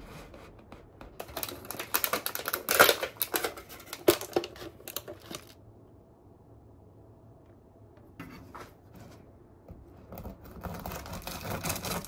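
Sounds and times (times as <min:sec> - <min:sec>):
plastic clamshell crackling: 0:01.2 - 0:05.6, 0:10.2 - 0:12.0
bread knife sawing crusty loaf: 0:10.5 - 0:12.0.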